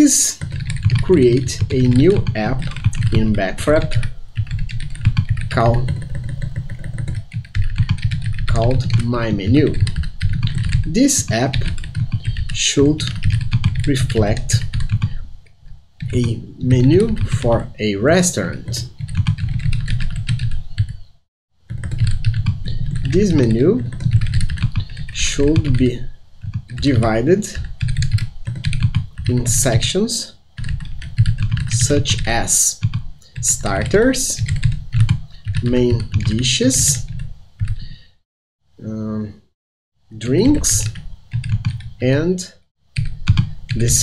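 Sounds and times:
fast typing on computer keyboard: 0.2s - 15.2s, 16.0s - 17.7s, 18.4s - 21.0s, 21.6s - 30.0s, 30.6s - 38.0s, 40.4s - 42.0s, 43.0s - 44.0s.

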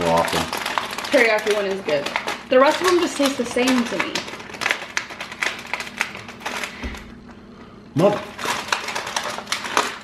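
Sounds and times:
plastic packet crinkling: 0.0s - 7.2s, 8.0s - 10.0s.

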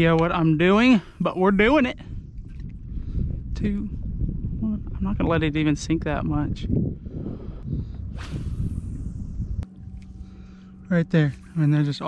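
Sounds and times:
wind buffeting microphone: 0.0s - 10.5s
faint steady hum: 6.8s - 12.0s
brief whoosh: 8.1s - 10.6s.

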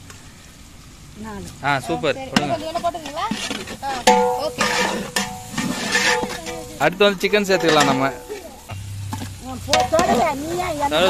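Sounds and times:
chicken sizzling in hot pot: 0.0s - 11.0s.

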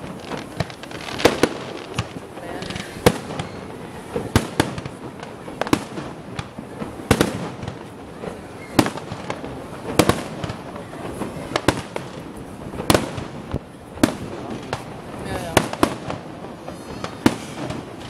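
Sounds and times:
fireworks bursting: 0.0s - 18.0s.

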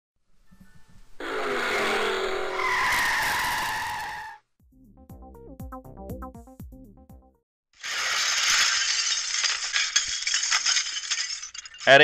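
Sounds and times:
car tyres screeching: 1.2s - 4.4s.

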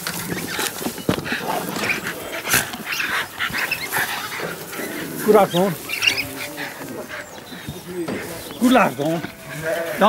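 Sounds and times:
rustling and scuffling in hay: 0.0s - 10.0s.

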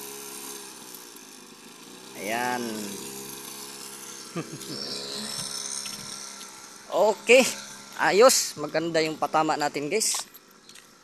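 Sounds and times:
small dirt bike motor buzzing: 0.0s - 11.0s.

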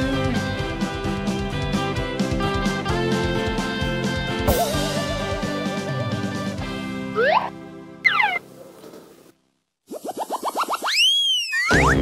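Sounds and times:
background music with a beat: 0.0s - 7.2s
long rising and falling glide: 9.9s - 11.7s
short rising chirps: 9.9s - 11.8s
falling whistle glide: 9.9s - 12.0s.

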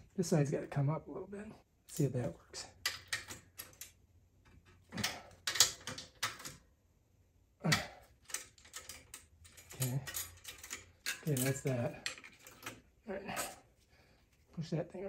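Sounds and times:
hand tools clicking on metal: 7.7s - 12.8s.

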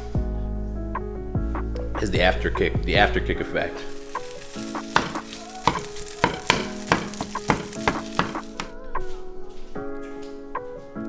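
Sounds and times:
background music with beat: 0.0s - 11.0s
food sizzling in oil: 3.6s - 8.8s.

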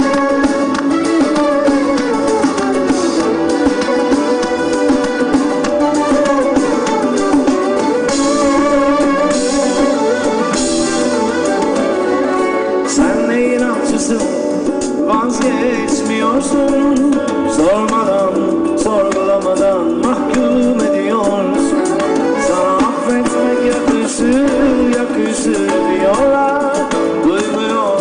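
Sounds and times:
live rock band playing: 0.0s - 28.0s.

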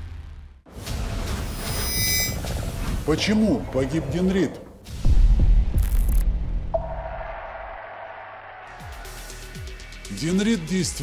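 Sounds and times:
steady high tone: 1.5s - 2.4s.

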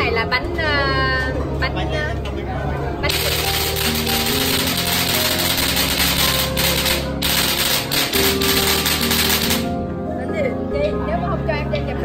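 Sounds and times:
background music: 0.0s - 12.0s
rapid clatter of clicks: 3.0s - 9.7s.

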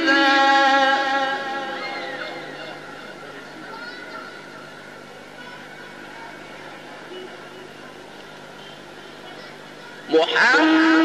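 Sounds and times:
faint murmur of voices: 0.0s - 11.0s
recording hiss and hum: 0.0s - 11.0s.

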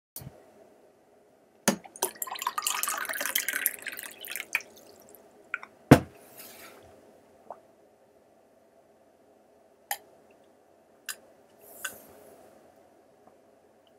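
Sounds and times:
water splashing in a glass: 2.0s - 5.2s.

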